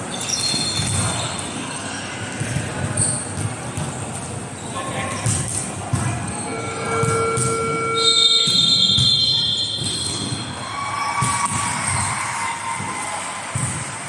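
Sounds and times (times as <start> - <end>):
shoes squeaking on sports floor: 0.0 - 11.3
volleyball being hit: 6.9 - 7.8, 11.2 - 14.0.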